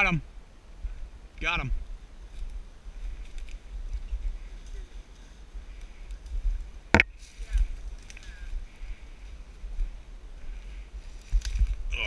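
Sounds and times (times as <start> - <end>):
small crackles: 2.2 - 12.0.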